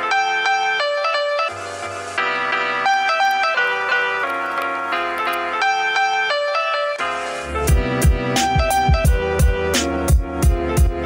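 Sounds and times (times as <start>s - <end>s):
keyboard melody: 0.0s - 11.0s.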